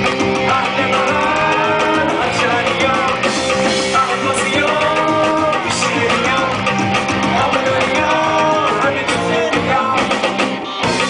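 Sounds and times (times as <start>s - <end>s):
pop band playing amplified music: 0.0s - 11.0s
men singing into microphones: 0.3s - 11.0s.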